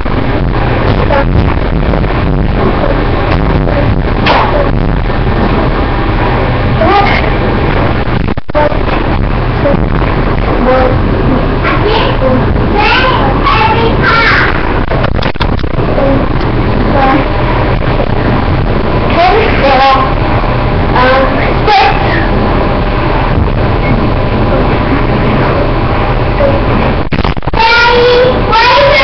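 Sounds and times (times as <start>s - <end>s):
loud background noise and hum: 0.0s - 29.0s.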